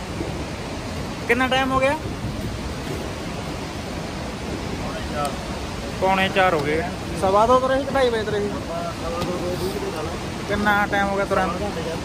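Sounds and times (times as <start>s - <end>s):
river rushing: 0.0s - 12.0s.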